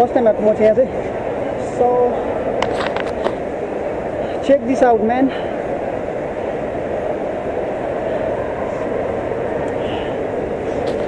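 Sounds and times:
escalator rumbling: 0.0 - 11.0
hum of busy indoor space: 0.0 - 11.0.

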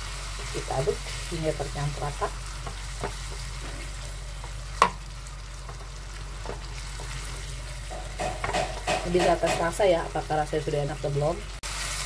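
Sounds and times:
spatula stirring in a pan: 0.0 - 10.2
spice paste sizzling in a pan: 0.0 - 12.0.

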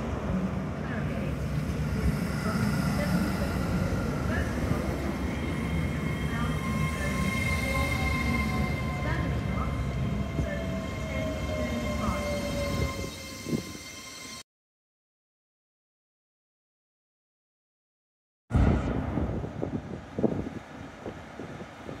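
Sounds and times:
train rumbling slowly: 0.0 - 14.4, 18.6 - 22.0.

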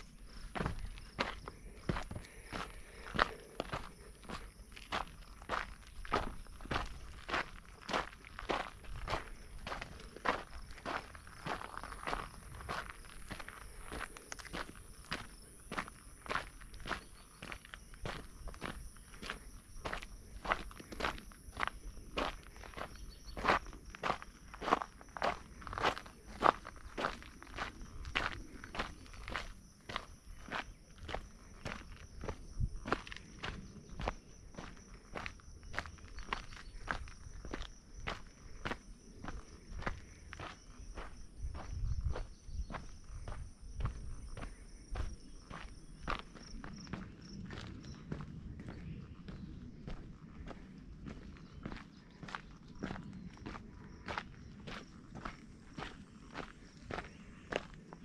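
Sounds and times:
footsteps on rocky trail: 0.0 - 58.0.

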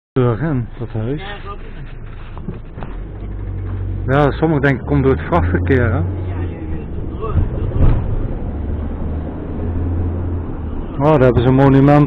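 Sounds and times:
car engine and tyre drone: 0.8 - 12.0.

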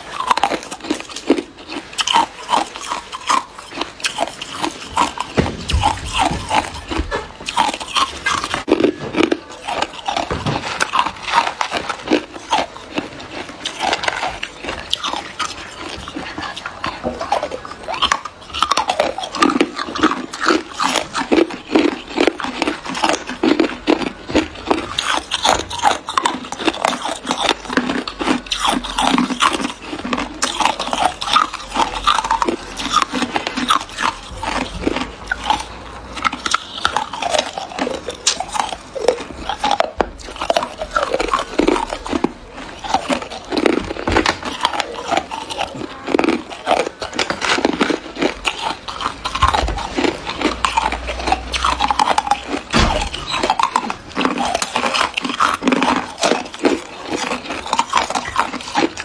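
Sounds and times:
person chewing ice: 0.0 - 59.0.

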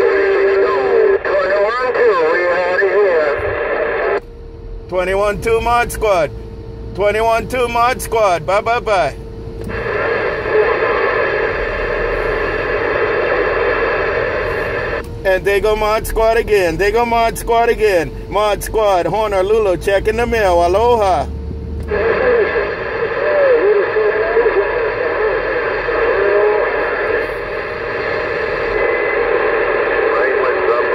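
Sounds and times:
radio static rush: 0.0 - 4.2, 4.9 - 30.9.

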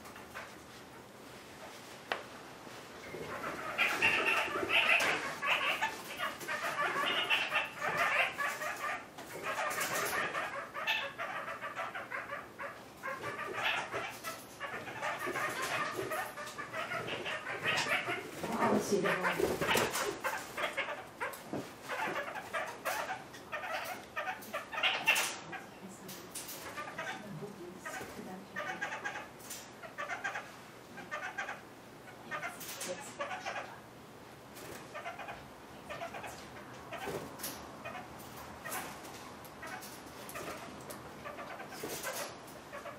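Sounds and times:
parakeets chattering and clucking: 0.0 - 1.7, 2.8 - 42.9.

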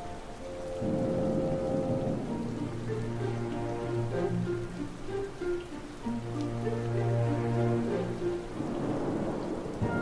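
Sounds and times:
soft orchestral music: 0.0 - 10.0
steady hiss: 0.0 - 10.0.

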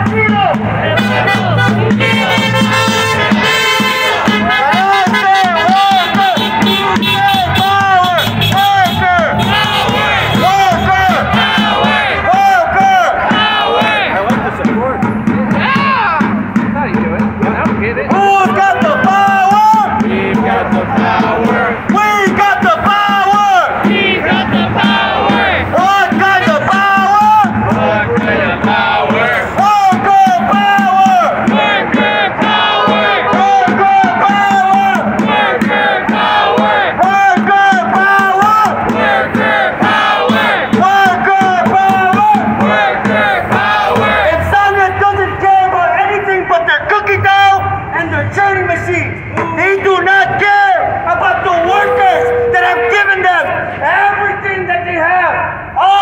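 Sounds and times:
protesters chanting: 0.0 - 16.6, 18.1 - 46.0, 49.3 - 53.9
person leading through a megaphone: 0.0 - 43.2, 43.8 - 56.0.

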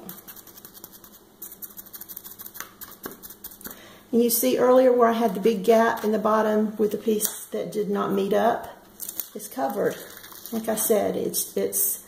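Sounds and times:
sponge brush dabbing: 0.0 - 3.7.

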